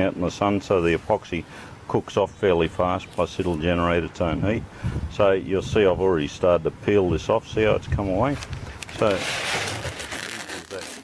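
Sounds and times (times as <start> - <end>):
peel ply tearing rustle: 8.3 - 11.0.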